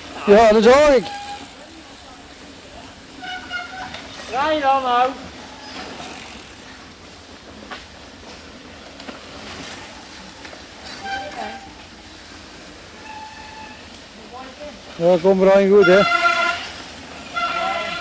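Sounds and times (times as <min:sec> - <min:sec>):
distant voices calling out: 0:09.5 - 0:18.0.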